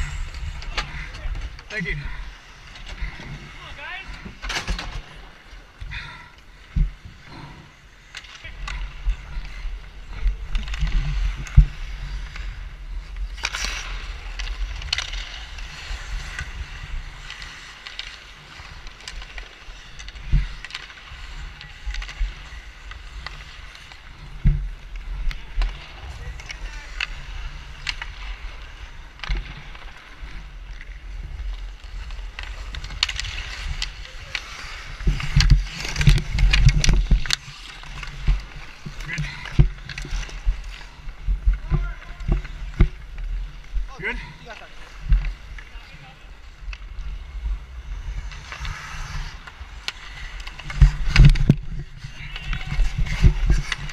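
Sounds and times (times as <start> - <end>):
wind rumble on microphone: 0.0 - 2.3, 45.0 - 53.9
skate blades scraping on ice: 0.0 - 53.9.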